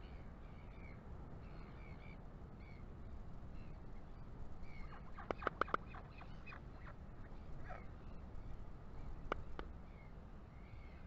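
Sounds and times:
albatross chick clacking bill: 4.9 - 6.7, 9.2 - 9.7.

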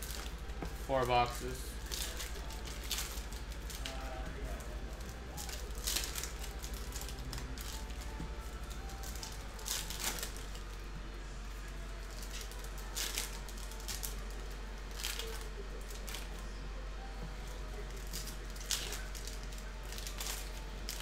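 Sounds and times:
foil wrappers crinkling and tearing: 0.0 - 10.9, 11.6 - 16.4, 17.6 - 21.0.

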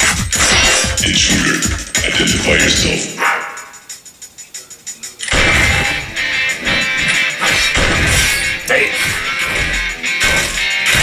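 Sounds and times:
loud action music: 0.0 - 4.0, 5.2 - 11.0
action sound effects: 5.2 - 11.0.

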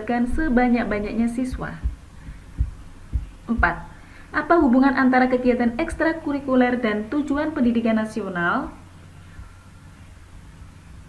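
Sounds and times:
soft deep thumps: 0.3 - 5.0.

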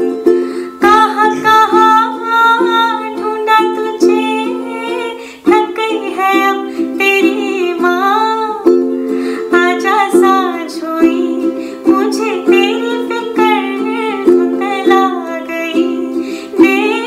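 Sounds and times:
ukulele strumming: 0.0 - 17.0
woman singing: 0.0 - 17.0.

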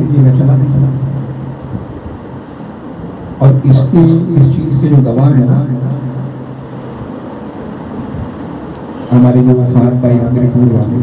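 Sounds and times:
low steady hum: 0.0 - 11.0
steady background noise: 0.0 - 11.0.

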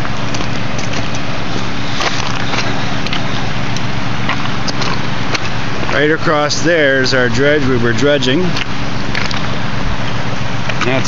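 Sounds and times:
dredge engine droning: 0.0 - 11.0.

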